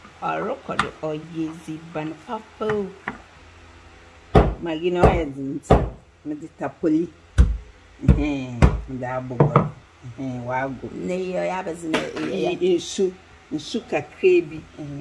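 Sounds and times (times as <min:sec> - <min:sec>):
pestle pounding in wooden mortar: 0:04.4 - 0:06.0, 0:07.4 - 0:09.7.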